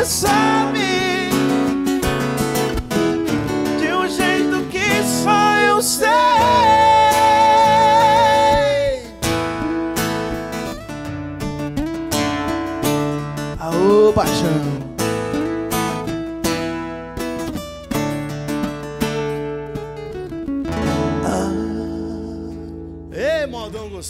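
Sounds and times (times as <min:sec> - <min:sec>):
acoustic guitars strumming: 0:00.0 - 0:24.0.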